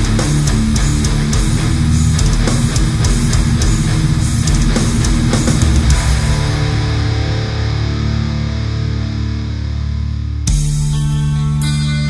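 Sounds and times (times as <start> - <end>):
heavy metal band chords: 0.0 - 12.0.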